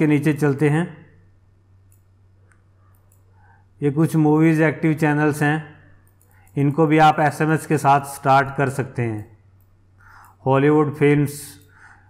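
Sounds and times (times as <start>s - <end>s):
man speaking: 0.0s - 1.1s, 3.8s - 5.8s, 6.6s - 9.4s, 10.4s - 11.6s
low steady hum: 0.0s - 12.0s
computer mouse clicks: 1.9s - 3.4s, 6.0s - 6.6s, 9.6s - 10.4s.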